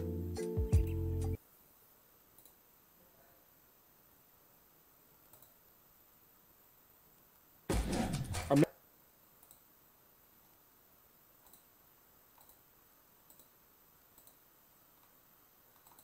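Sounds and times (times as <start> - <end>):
faint computer mouse clicks: 2.3 - 2.6, 5.3 - 5.6, 9.4 - 9.7, 11.4 - 11.7, 12.3 - 12.6, 13.2 - 14.4, 15.0 - 16.0.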